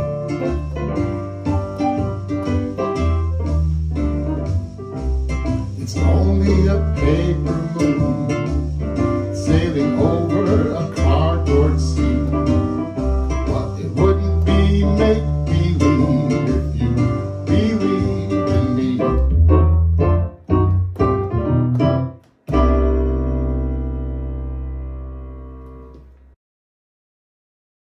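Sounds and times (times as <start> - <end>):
deep bass line: 0.0 - 26.2
electronic keyboard jazz: 0.0 - 26.4.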